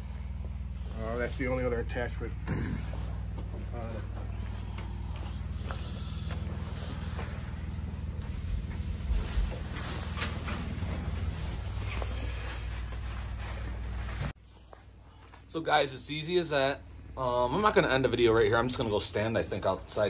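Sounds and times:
footsteps: 2.8 - 15.5
motor humming: 2.9 - 13.1.

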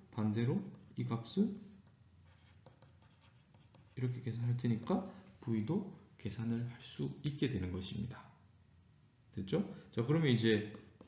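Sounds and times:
stylus scratching on tablet screen: 0.6 - 4.2.

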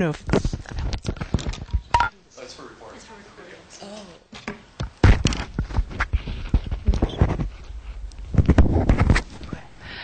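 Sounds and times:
microphone handling knocks: 4.8 - 7.5.

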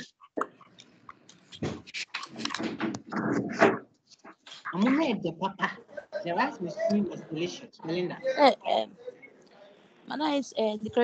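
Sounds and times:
person speaking over video call: 4.4 - 11.0.

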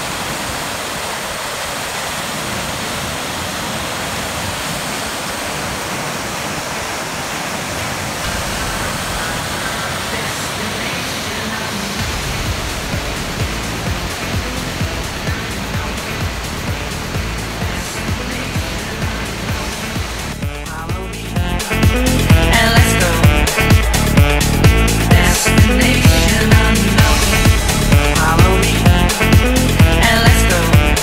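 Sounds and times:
waterfall rushing over rocks: 0.0 - 20.7, 21.4 - 31.0
low uneven rumbling: 11.8 - 31.0.

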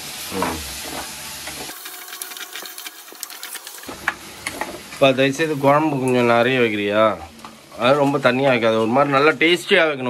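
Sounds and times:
vegetables sizzling in oil: 0.0 - 6.9.

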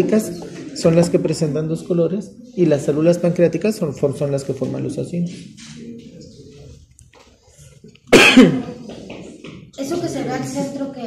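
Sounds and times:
person coughing: 8.1 - 8.8.

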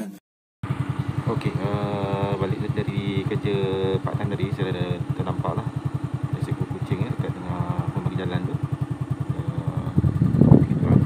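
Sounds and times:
small motorcycle engine idling: 0.6 - 11.0.

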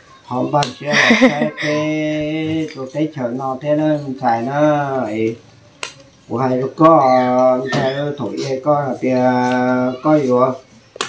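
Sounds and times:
person speaking: 0.4 - 3.2.

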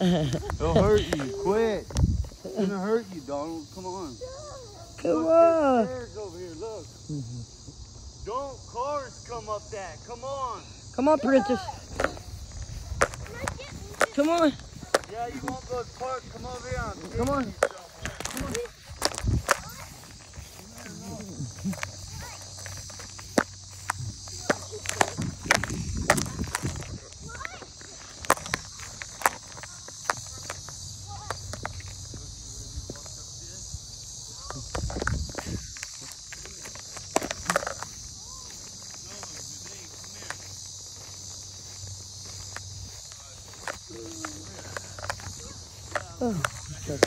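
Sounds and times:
crickets chirping: 0.0 - 47.0
footsteps on grass: 11.4 - 33.2, 34.3 - 47.0.

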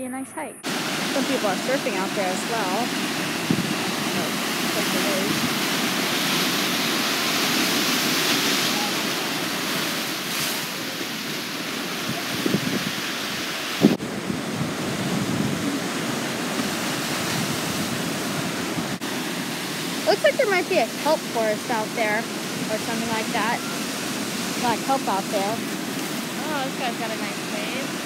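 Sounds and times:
ocean surf breaking on rocks: 0.6 - 28.0.

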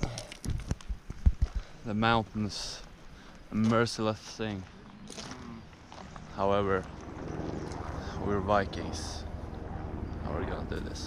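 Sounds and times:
footsteps on gravel: 2.7 - 8.0.

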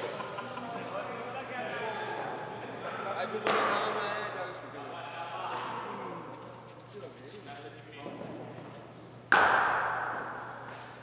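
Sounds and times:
cricket bat striking ball: 9.3 - 10.6.

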